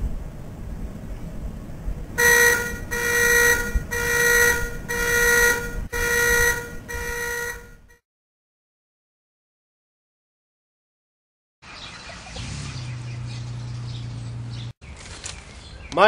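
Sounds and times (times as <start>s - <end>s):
low background rumble: 0.0s - 7.9s
alarm clock beeping: 2.2s - 7.8s.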